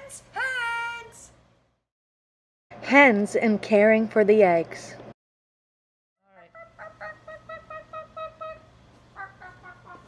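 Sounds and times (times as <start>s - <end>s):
hen clucking: 6.3s - 10.0s.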